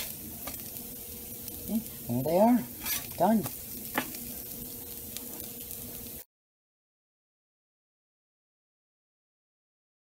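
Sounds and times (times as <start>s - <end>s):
pancakes sizzling in a skillet: 0.0s - 6.3s.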